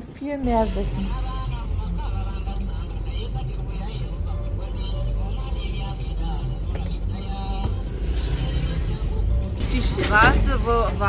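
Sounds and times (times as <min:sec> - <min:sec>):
truck diesel engines rumbling: 0:00.0 - 0:11.0.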